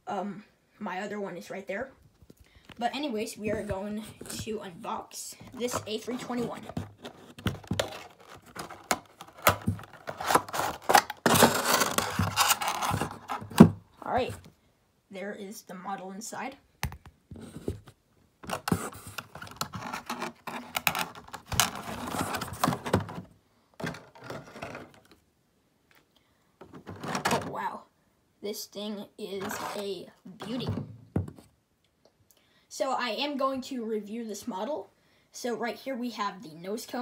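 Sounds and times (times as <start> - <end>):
cardboard and plastic scrapes and clicks: 5.4 - 14.4, 17.3 - 25.2, 29.4 - 29.8.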